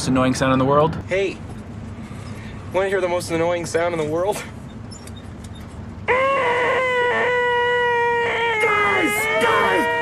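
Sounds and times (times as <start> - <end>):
man's shrill nasal shriek: 6.1 - 10.0.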